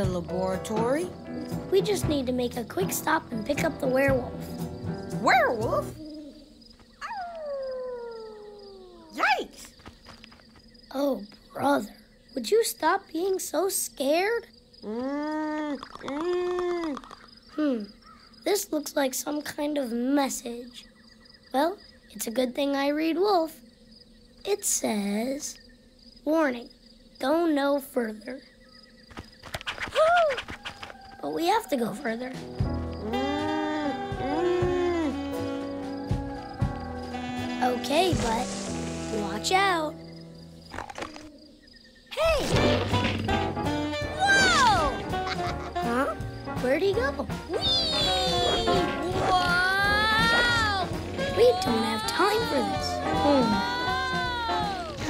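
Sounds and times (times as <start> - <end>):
cartoon werewolf howl: 5.3 - 9.2, 33.1 - 37.2, 44.2 - 45.1, 47.5 - 55.0
wolf-like howl: 7.0 - 9.2, 35.8 - 37.2
eerie music with slow beat: 32.4 - 37.3
loud yelp: 33.1 - 37.6, 44.0 - 45.4, 47.5 - 55.0.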